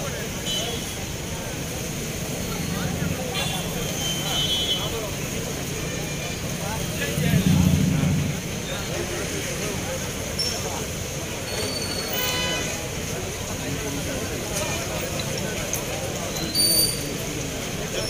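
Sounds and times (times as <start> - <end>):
passing traffic: 0.0 - 18.0
people talking: 0.0 - 18.0
vehicle horn toots: 3.3 - 5.0, 12.0 - 12.9
vehicle passing close: 5.3 - 10.0.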